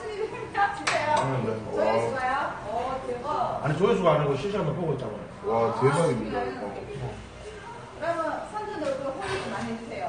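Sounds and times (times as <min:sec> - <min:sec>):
men talking: 0:03.6 - 0:07.1.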